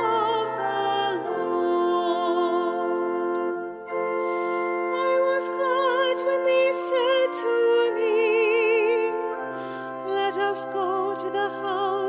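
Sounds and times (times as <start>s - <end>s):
solo voice singing with vibrato: 0.0s - 3.6s, 10.0s - 12.0s
sustained organ chords: 0.0s - 12.0s.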